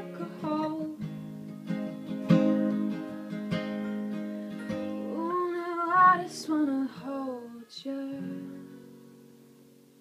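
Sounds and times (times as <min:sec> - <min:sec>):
woman singing: 0:00.0 - 0:01.0, 0:05.0 - 0:08.9
strummed acoustic guitar: 0:00.0 - 0:10.0.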